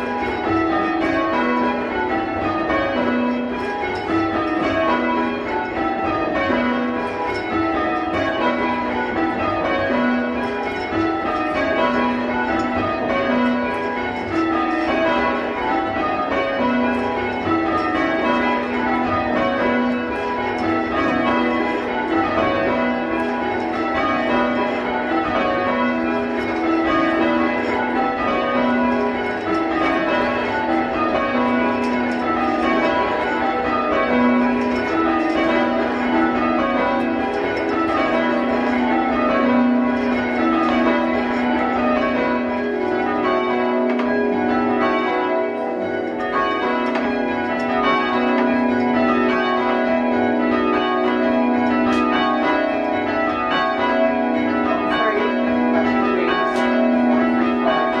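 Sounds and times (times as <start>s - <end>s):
church bells change ringing: 0.0s - 58.0s.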